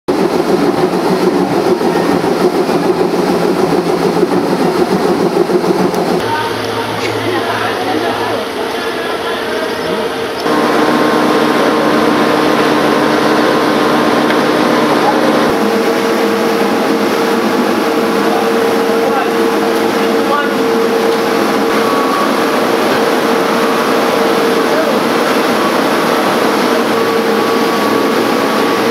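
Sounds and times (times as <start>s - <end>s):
machinery running loudly: 0.1s - 28.9s.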